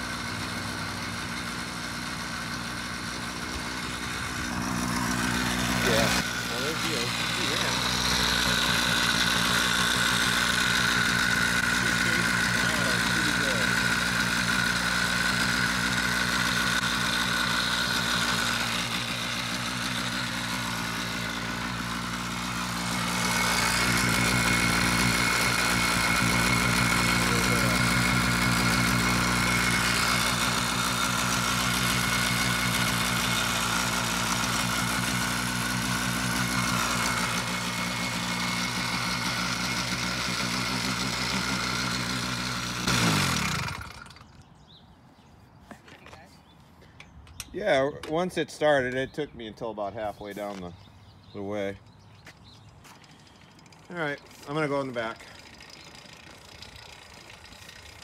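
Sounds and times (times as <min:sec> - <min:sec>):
two-stroke engine idling: 0:00.0 - 0:44.7, 0:49.7 - 0:58.0
bike rattling: 0:00.0 - 0:44.8, 0:51.8 - 0:58.0.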